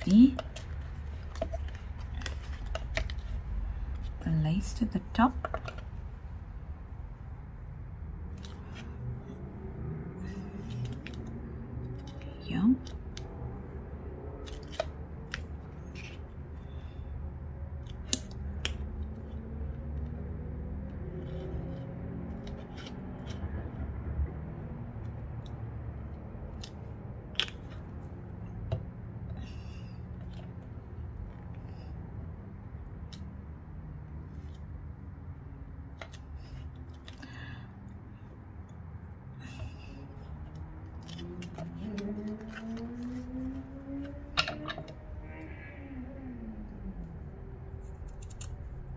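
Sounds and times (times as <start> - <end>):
hands handling paper and objects: 0.0 - 4.2, 40.8 - 43.6
low hum: 0.0 - 48.9.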